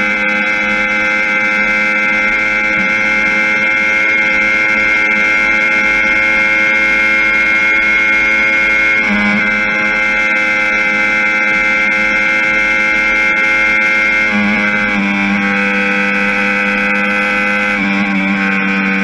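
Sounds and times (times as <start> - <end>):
motorcycle engine at high revs: 0.0 - 19.0.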